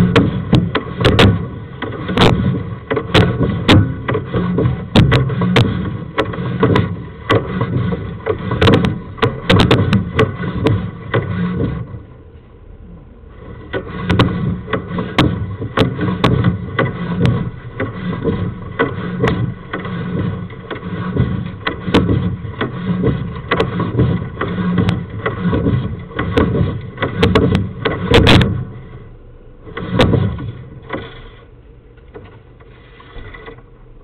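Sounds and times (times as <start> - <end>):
cable scraping and rattling in pipe: 0.0 - 12.1, 13.3 - 34.0
sharp clicks and knocks: 0.0 - 12.1, 13.4 - 33.8.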